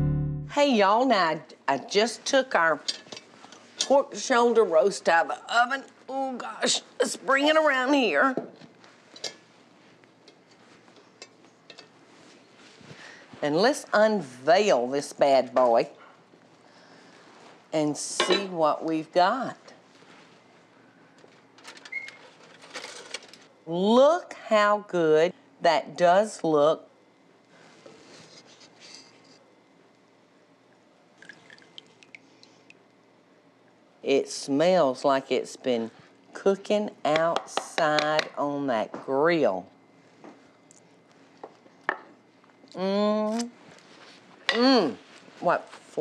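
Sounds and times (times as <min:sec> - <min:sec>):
small drips and clicks: 0:31.2 - 0:33.0.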